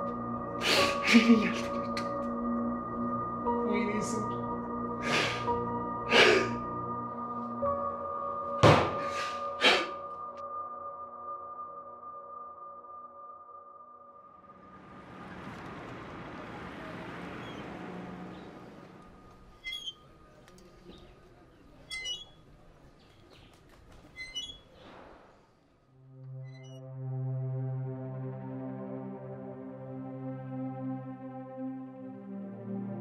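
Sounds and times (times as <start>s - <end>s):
held orchestral chord: 0.0s - 8.6s, 26.0s - 33.0s.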